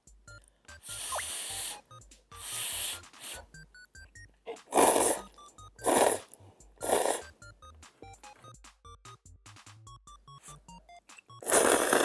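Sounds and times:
light background music: 0.0 - 12.0
noodles slurped: 4.6 - 7.3, 11.4 - 12.0.

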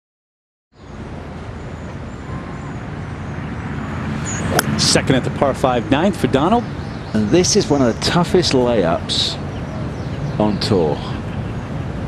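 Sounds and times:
low rumble and hiss: 1.0 - 12.0.

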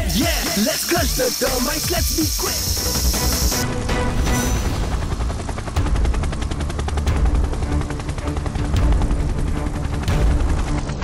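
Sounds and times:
cartoon helicopter rotor chop: 0.0 - 8.0.

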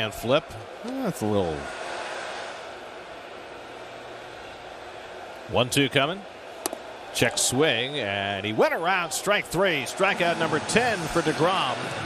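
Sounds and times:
ballpark crowd noise: 0.0 - 12.0.

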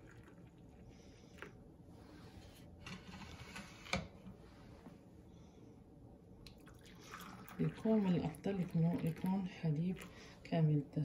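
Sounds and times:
milk trickling into a cup: 0.0 - 1.6, 6.5 - 10.5.

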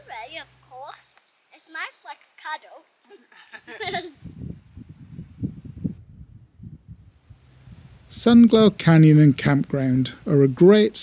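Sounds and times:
wind buffeting microphone: 3.8 - 9.5.

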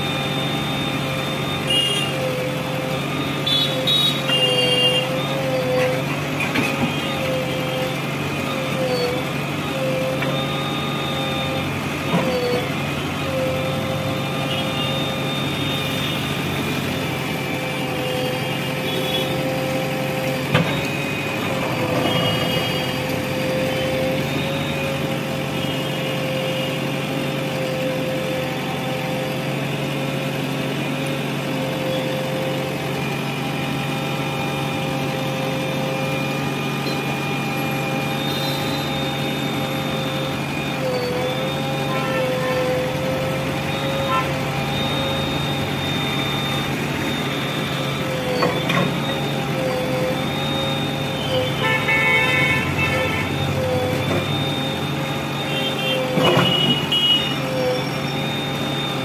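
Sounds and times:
diesel engine running: 0.0 - 59.0.

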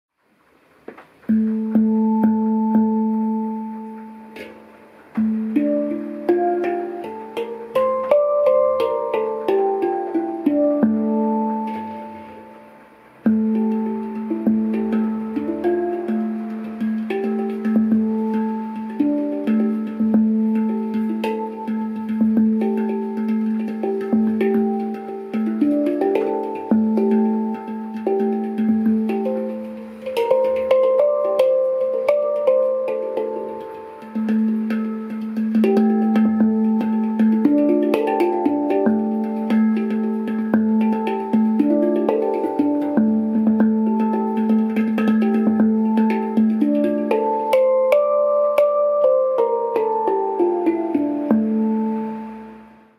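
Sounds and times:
handpan melody: 0.9 - 52.9.

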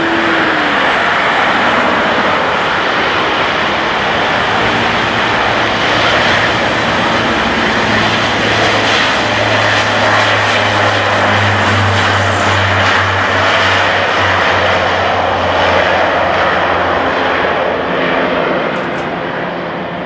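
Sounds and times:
low hum: 0.0 - 19.9
propeller drone: 0.0 - 20.0.

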